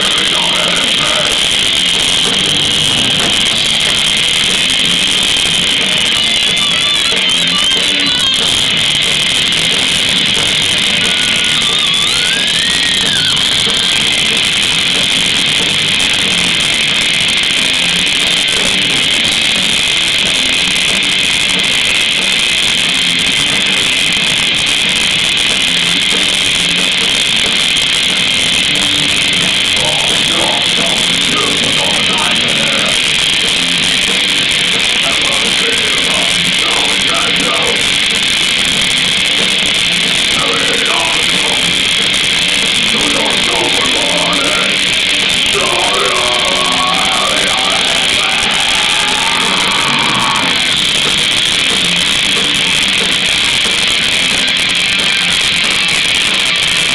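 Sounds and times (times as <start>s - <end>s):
bass guitar: 0.0s - 56.9s
distorted electric guitars: 0.0s - 56.9s
drum kit: 0.0s - 56.9s
guitar note bending: 0.0s - 56.9s.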